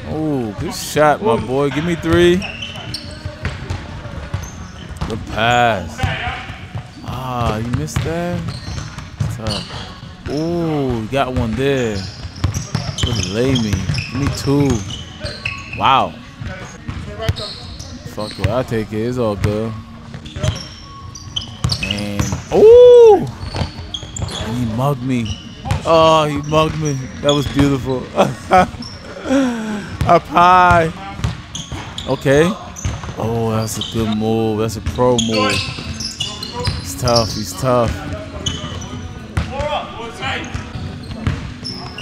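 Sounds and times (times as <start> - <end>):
players' voices: 0.0 - 42.0
sneaker squeaks on gym floor: 1.2 - 29.3, 30.0 - 42.0
loud drawn-out shout: 22.5 - 23.3.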